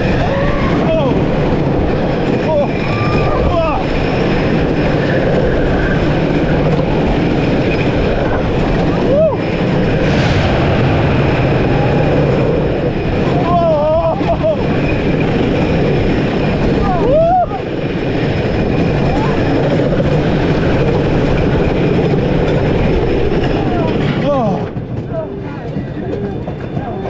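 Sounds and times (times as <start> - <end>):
riders screaming: 0.0 - 1.3, 2.4 - 4.4, 8.9 - 9.6, 16.8 - 17.8
roller coaster rumble and rattle: 0.0 - 27.0.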